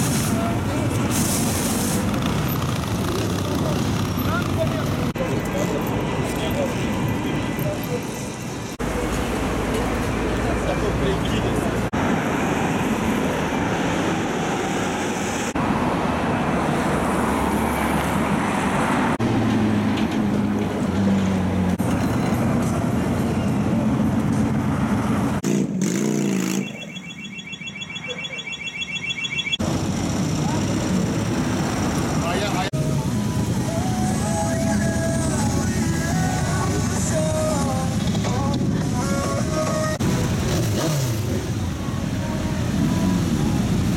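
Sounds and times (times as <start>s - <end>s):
motorcycle engines running: 1.9s - 6.7s, 29.6s - 43.9s
electronic beeping: 26.5s - 29.6s.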